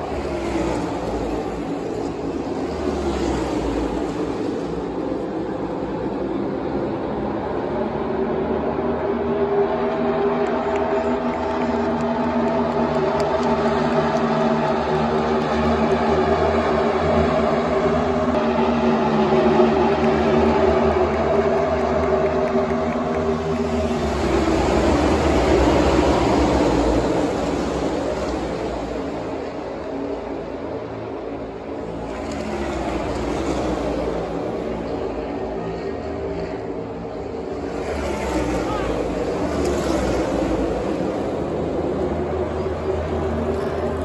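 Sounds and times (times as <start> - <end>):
race cars engines droning: 0.0 - 44.0.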